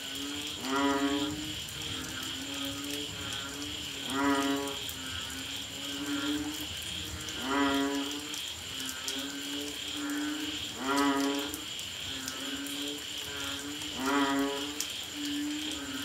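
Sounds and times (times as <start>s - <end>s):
faint frogs calling: 0.0s - 16.0s
frogs calling loudly: 0.0s - 16.0s.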